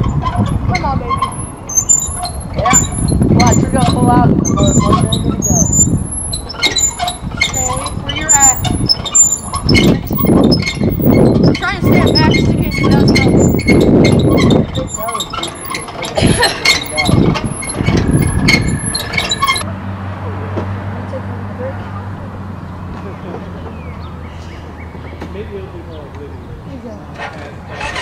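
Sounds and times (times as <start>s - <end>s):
winch ratchet clicking: 0.2s - 19.7s.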